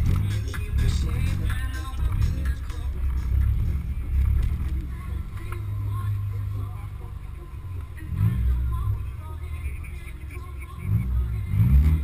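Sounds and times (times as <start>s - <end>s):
car engine rumbling: 0.0s - 12.0s
music playing: 0.0s - 12.0s.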